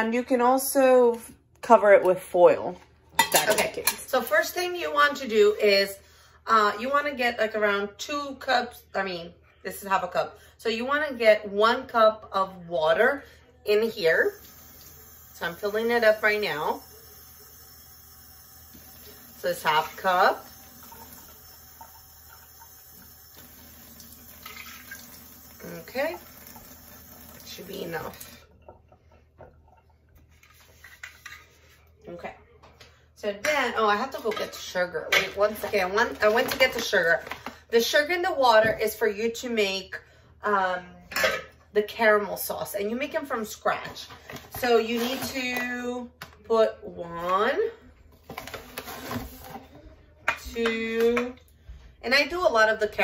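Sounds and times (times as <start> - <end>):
water pouring into metal pan: 14.3 - 28.4.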